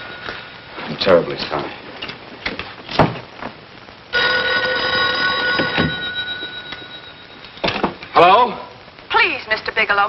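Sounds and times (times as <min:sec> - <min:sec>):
telephone mechanical bell ringing: 0:04.1 - 0:07.6.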